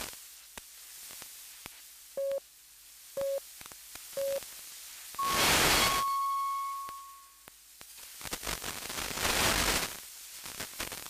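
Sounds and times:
radio hiss: 0.0s - 2.4s, 3.1s - 11.0s
short low radio pips: 5.2s - 7.2s
surge of radio static: 5.2s - 7.2s
long high radio tone: 5.2s - 7.4s.

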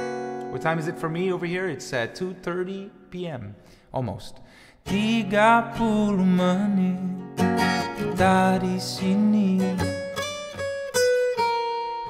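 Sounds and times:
acoustic guitar plucked notes: 0.0s - 3.4s, 4.9s - 12.0s.

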